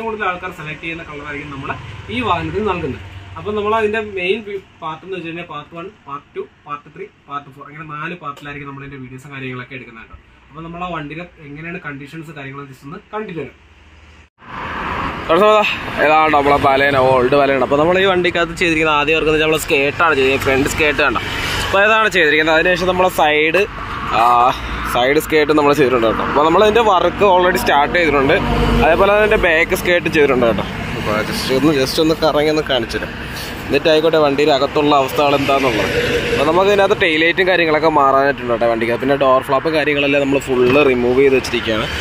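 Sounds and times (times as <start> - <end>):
roadside traffic noise: 0.0 - 42.0
man speaking: 15.3 - 41.9
man talking: 15.3 - 41.9.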